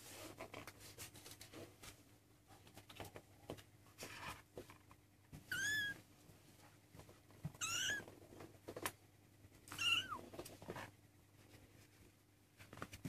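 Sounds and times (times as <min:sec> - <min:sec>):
faint clicks and rustles: 0:00.0 - 0:13.0
kitten mewing: 0:05.5 - 0:06.0, 0:07.6 - 0:08.1, 0:09.7 - 0:10.2.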